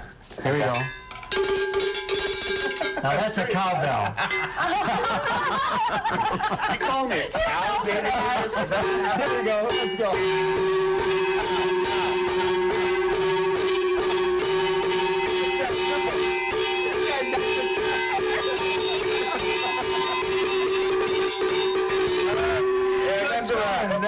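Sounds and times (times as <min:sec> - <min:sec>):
cowbells struck on a beat: 0:00.5 - 0:05.4, 0:08.2 - 0:24.0
laughter: 0:02.6 - 0:09.3.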